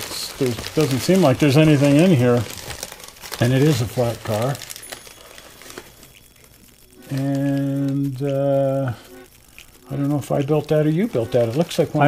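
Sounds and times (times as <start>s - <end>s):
packing paper rustling: 0.0s - 12.0s.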